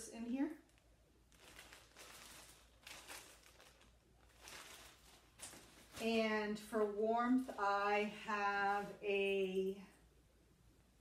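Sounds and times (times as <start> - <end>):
plastic bag rustling: 0.5 - 8.1.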